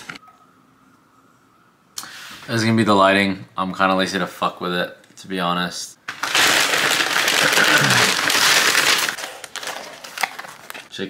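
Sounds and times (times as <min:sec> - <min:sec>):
paper bag rustling and crinkling: 0:06.1 - 0:10.9.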